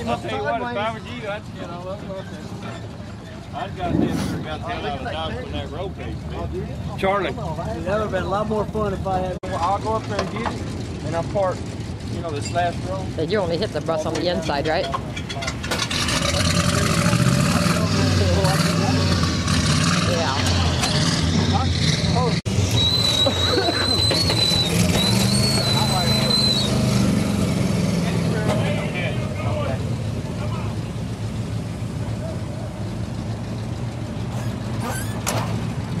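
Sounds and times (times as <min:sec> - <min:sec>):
vehicle engine revving: 0:15.6 - 0:36.0.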